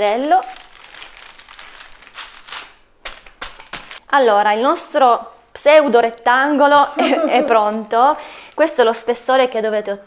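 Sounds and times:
baking paper crinkling: 0.0s - 5.3s.

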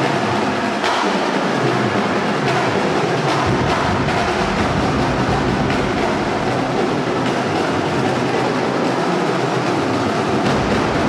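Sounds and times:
rapid snare drumming: 0.0s - 11.0s.

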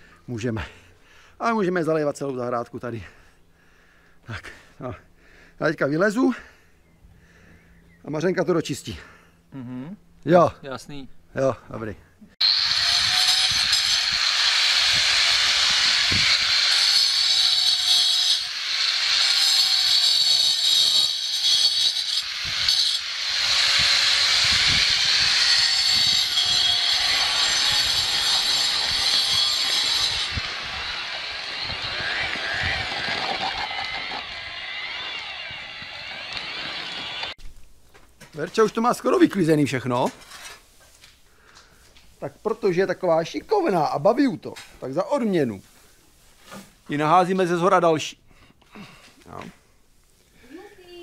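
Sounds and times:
electric drill mixing concrete: 12.4s - 37.4s
power tool whining against concrete: 12.4s - 37.4s.

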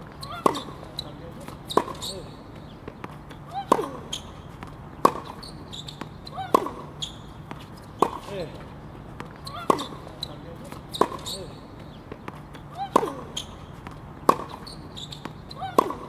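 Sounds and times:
tennis ball bouncing on court: 0.0s - 16.0s
tennis ball struck by racket: 0.0s - 16.0s.

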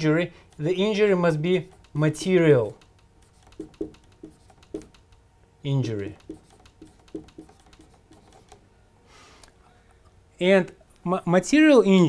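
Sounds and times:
marker writing on whiteboard: 1.6s - 5.1s, 6.1s - 8.6s.

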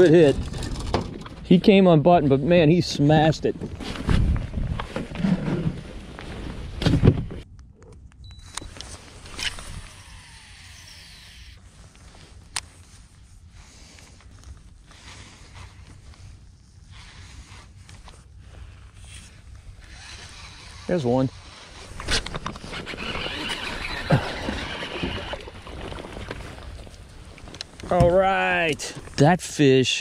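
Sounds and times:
faint outdoor background: 0.0s - 30.0s.

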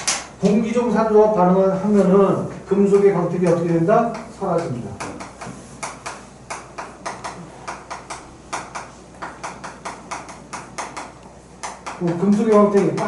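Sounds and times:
chalk tapping and scraping on chalkboard: 2.9s - 13.0s.

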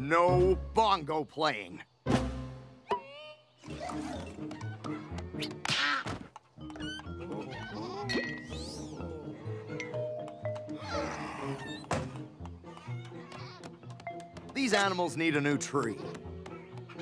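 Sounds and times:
cartoon background music: 0.0s - 1.4s, 2.1s - 17.0s
animal bleats and cries: 7.2s - 9.7s, 10.8s - 11.9s.

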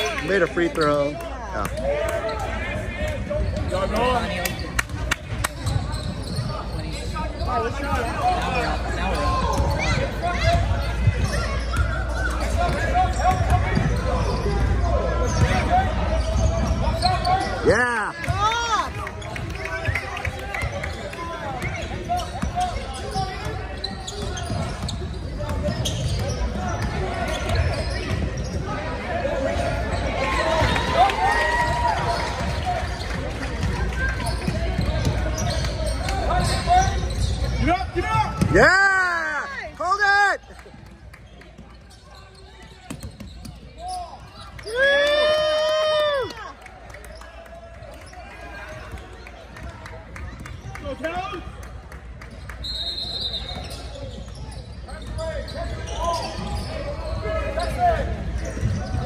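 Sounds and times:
sneakers squeaking on hardwood: 5.6s - 17.7s, 19.2s - 28.8s, 31.6s - 38.6s, 41.4s - 44.7s, 52.4s - 59.0s.

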